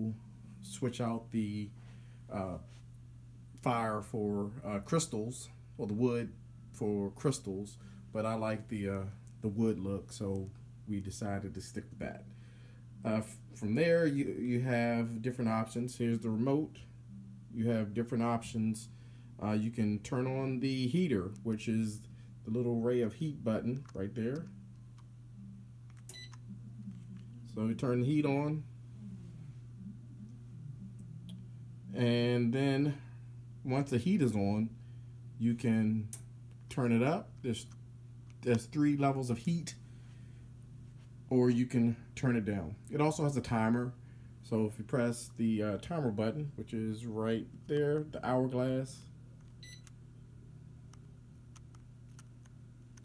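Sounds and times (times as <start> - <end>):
steady low hum: 0.0 - 53.0
electric fireplace beep: 23.4 - 32.1, 49.4 - 50.0.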